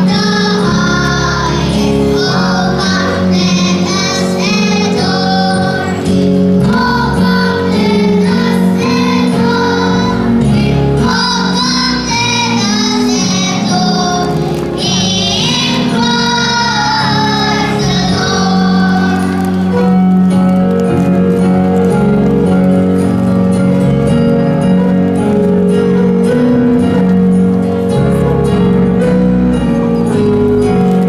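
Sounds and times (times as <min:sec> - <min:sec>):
children's choir singing: 0:00.0 - 0:20.4
instrumental accompaniment: 0:00.0 - 0:31.0.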